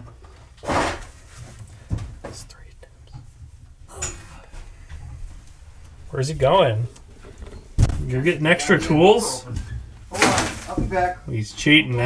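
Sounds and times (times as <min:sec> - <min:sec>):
wire rustling in plastic conduit: 0:00.0 - 0:11.2
low steady rumble: 0:02.5 - 0:10.1.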